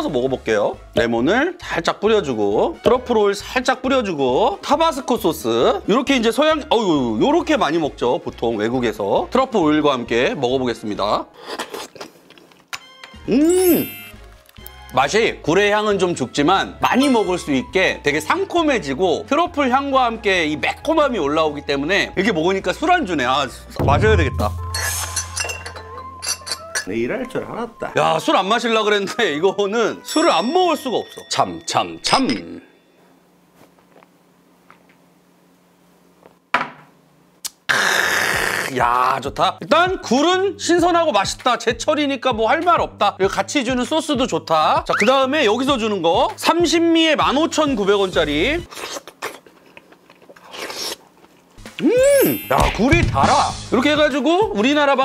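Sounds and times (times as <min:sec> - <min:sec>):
wet slurping and chewing: 0:11.4 - 0:12.7, 0:48.7 - 0:51.6
glass clinking: 0:24.6 - 0:26.9, 0:30.1 - 0:32.9.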